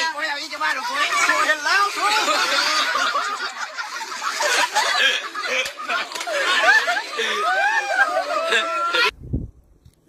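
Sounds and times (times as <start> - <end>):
people laughing and calling out: 0.0 - 9.1.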